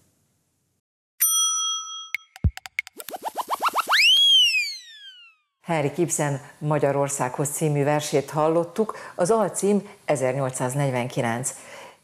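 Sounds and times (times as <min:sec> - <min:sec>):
bell-like ding: 0:01.2 - 0:02.8
rising chirps: 0:02.2 - 0:05.4
swooping tone: 0:02.7 - 0:05.4.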